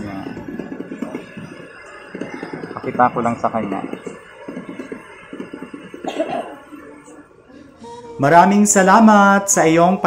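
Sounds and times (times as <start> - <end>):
faint background noise: 0.0 - 10.0
person coughing: 6.0 - 6.6.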